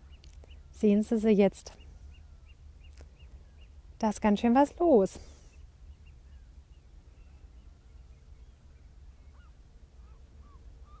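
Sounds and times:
distant birds chirping: 0.0 - 11.0.

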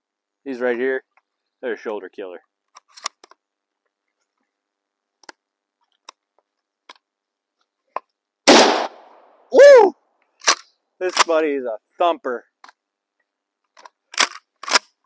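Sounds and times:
gun handling clicks: 2.7 - 3.4, 10.4 - 11.3, 13.6 - 15.0
shotgun blast: 8.5 - 9.1
loud shout: 9.5 - 10.0.

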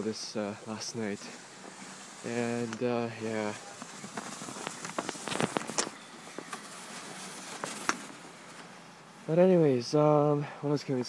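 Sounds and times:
snow crunching: 0.0 - 9.5
crisp crackles: 0.6 - 8.7
plastic scoop scraping snow: 0.6 - 8.7.

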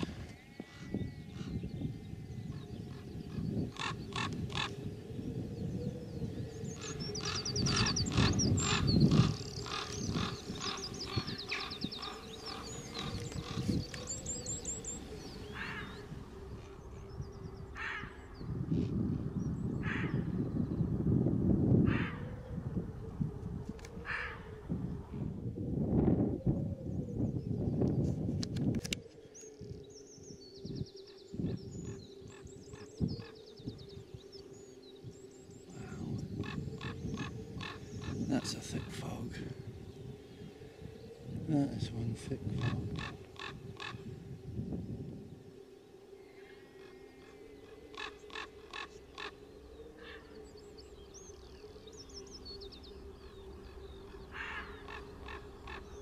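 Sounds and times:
small birds trilling: 0.0 - 21.1, 21.7 - 23.0, 28.9 - 56.0
low rumbling noise: 0.0 - 56.0
faint wavering tone: 22.2 - 56.0
short bird calls: 53.7 - 56.0.

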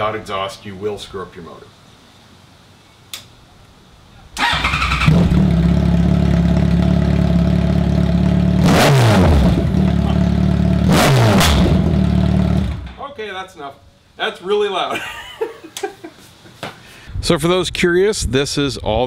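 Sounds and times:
motorcycle engine cranking: 4.4 - 6.6
loud motorcycle engine idling and revving: 4.8 - 12.9.

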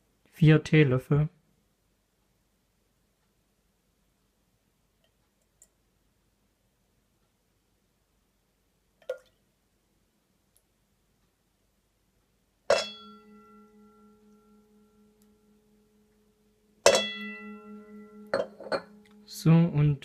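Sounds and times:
teaspoon clinking metal bowl: 12.7 - 15.2, 16.8 - 19.3.

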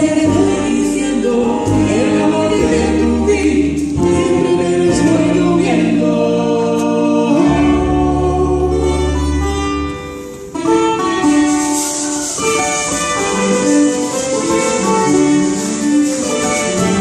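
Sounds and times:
people singing: 0.0 - 9.4
guitar: 0.0 - 17.0.

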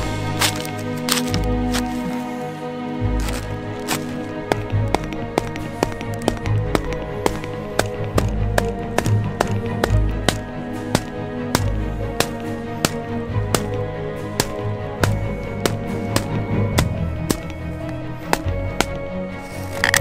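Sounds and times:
background music: 0.0 - 20.0
wooden mallet tapping peg: 4.5 - 19.0.

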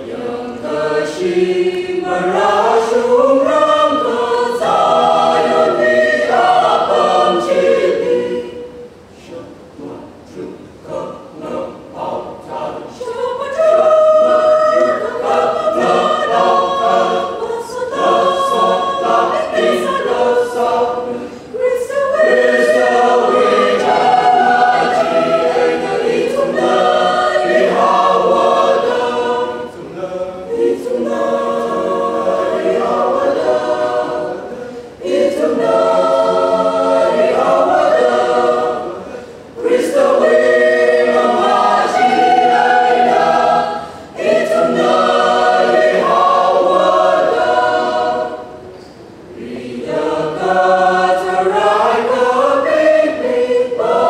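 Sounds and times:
mixed choir singing: 0.0 - 54.0.

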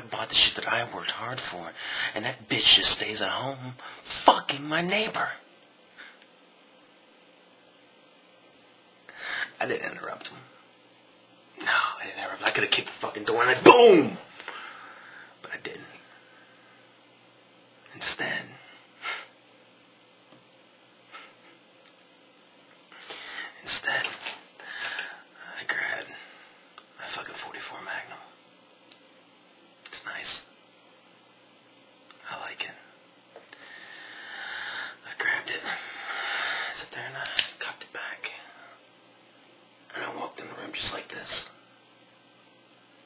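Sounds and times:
man whispering: 0.0 - 5.4, 9.2 - 10.5, 11.6 - 14.3, 15.4 - 16.1, 17.9 - 18.7, 23.0 - 26.3, 26.9 - 28.4, 29.8 - 30.5, 32.2 - 33.0, 35.0 - 38.8, 39.9 - 41.6
whispered sounds: 23.0 - 26.3, 29.8 - 30.5, 32.2 - 32.9, 35.0 - 35.8, 36.7 - 38.8, 39.9 - 41.6.

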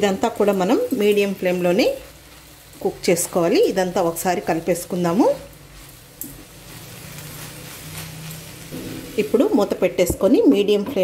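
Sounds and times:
food sizzling in a pan: 0.0 - 11.0
woman speaking: 9.1 - 11.0.

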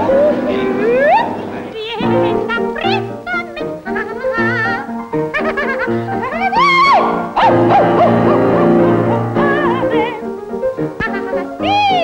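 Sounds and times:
operatic soprano singing: 0.0 - 4.9, 6.1 - 12.0
musical accompaniment: 0.0 - 12.0.

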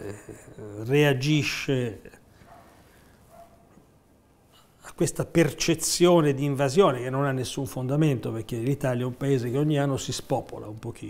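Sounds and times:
man speaking: 0.0 - 2.2, 4.8 - 11.0.

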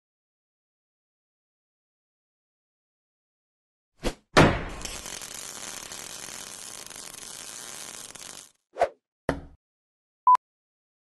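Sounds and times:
welding arc crackling hiss: 4.7 - 8.6.

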